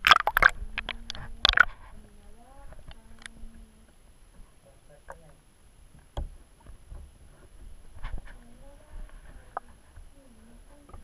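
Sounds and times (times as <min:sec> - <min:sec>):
bathwater sloshing: 0:00.0 - 0:01.8.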